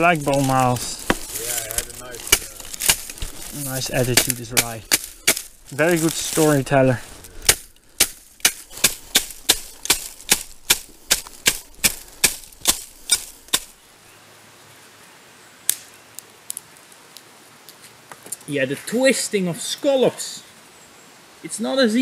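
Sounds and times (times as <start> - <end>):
wooden tool knocking reed bundles: 0.0 - 13.8.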